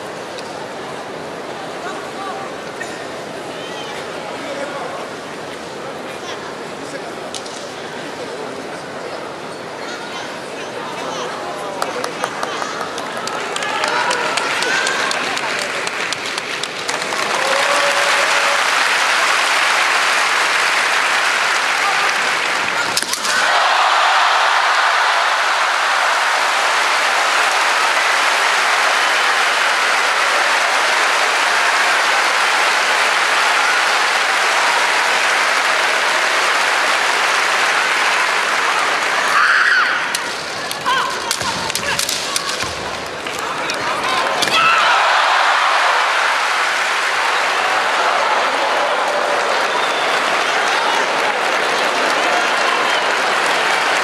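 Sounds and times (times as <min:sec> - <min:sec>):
audience applauding: 0:11.6 - 0:54.0
raised voices: 0:21.2 - 0:52.9.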